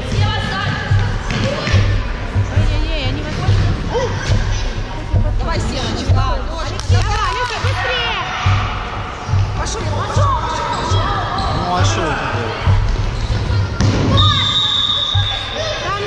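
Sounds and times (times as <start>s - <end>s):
referee's whistle blast: 14.1s - 15.6s.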